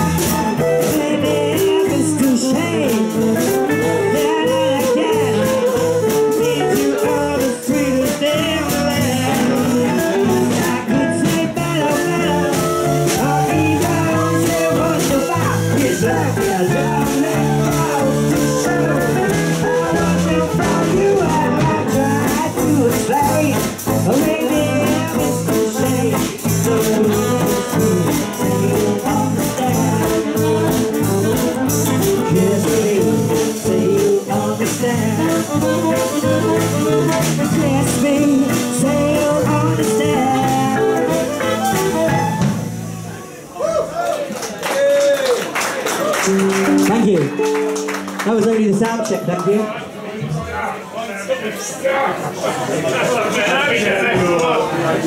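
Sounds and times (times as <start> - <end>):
electric guitar: 0.0 - 43.4, 46.0 - 50.6
swing jazz band playing: 0.0 - 43.5, 45.6 - 50.9, 52.6 - 55.0.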